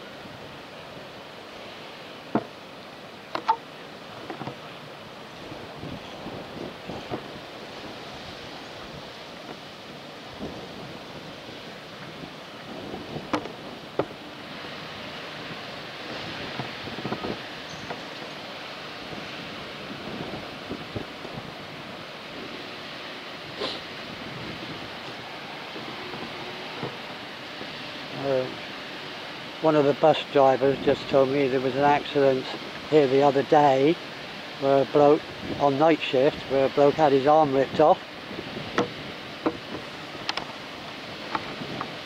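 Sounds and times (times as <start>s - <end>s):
outdoor background hiss: 0.0s - 42.0s.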